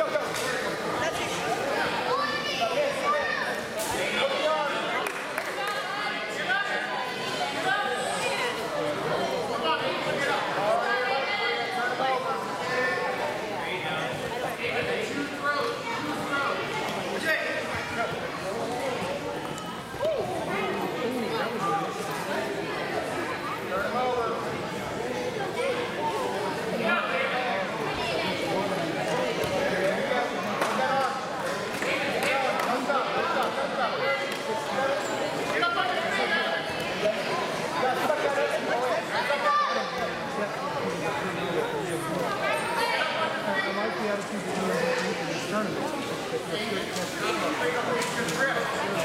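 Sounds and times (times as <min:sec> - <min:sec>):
people shouting in a gymnasium: 0:00.0 - 0:44.0
echoing chatter of many voices: 0:00.0 - 0:49.0.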